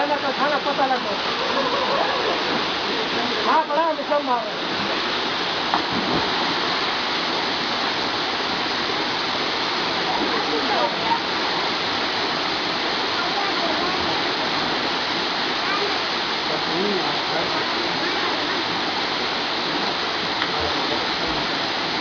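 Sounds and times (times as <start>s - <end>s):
waterfall pouring into pool: 0.0s - 22.0s.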